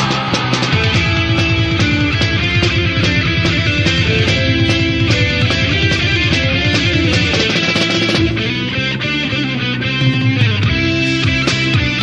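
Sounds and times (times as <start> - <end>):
bass guitar: 0.0 - 12.0
electric guitars: 0.0 - 12.0
steady drums: 0.0 - 12.0.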